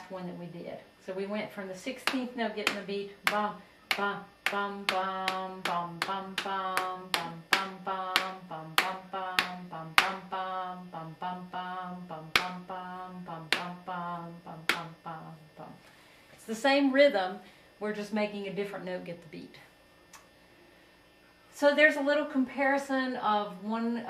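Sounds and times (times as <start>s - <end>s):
woman singing wordless syllables: 0.0s - 19.7s, 21.5s - 24.0s
fingers tapping whiteboard: 2.0s - 10.2s, 13.5s - 13.8s.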